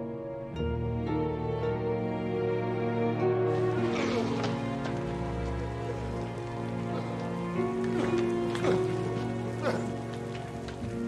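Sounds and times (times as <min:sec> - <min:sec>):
film music of held notes: 0:00.0 - 0:11.0
rain on cobblestones: 0:03.5 - 0:11.0.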